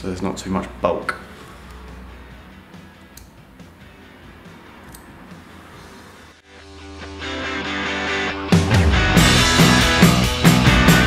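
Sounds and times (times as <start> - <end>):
faint background music: 0.0 - 8.2
scissors snipping hair: 4.8 - 5.1.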